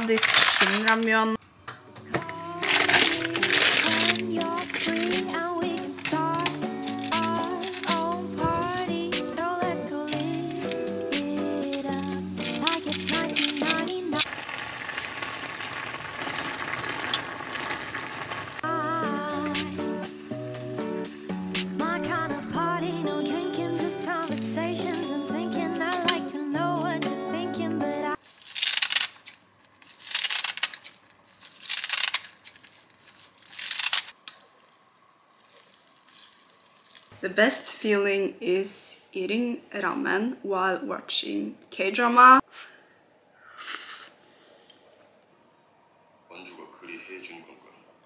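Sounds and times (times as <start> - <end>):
broth bubbling in saucepan: 14.2 - 18.8.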